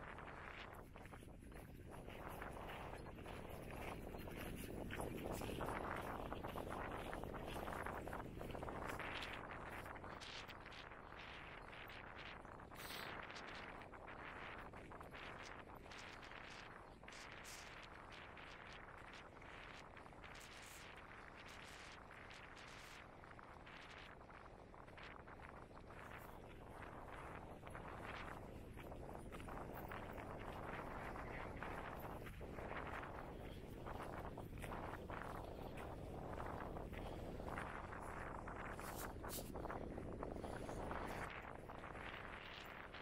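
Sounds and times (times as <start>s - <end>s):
footsteps on stony dirt trail: 0.4s - 9.9s, 25.9s - 42.3s.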